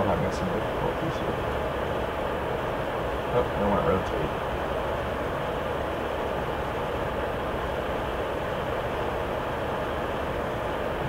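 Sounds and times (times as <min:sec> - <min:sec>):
microphone background hiss: 0:00.0 - 0:11.0.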